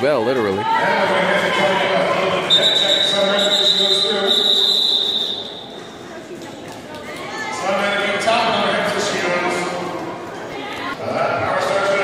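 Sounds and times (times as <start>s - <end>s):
voices in a large hall: 0.0s - 12.0s
referee's whistle: 2.5s - 5.9s.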